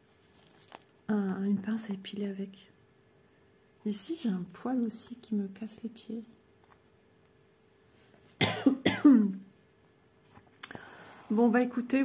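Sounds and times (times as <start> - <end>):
woman coughing: 8.4 - 9.4.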